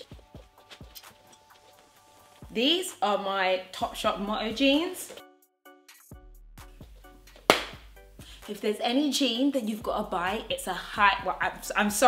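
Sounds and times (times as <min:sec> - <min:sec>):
plucked background music: 0:00.0 - 0:12.0.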